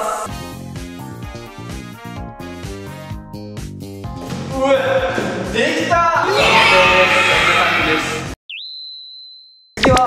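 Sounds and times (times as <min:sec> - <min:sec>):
background music: 0:00.0 - 0:08.4.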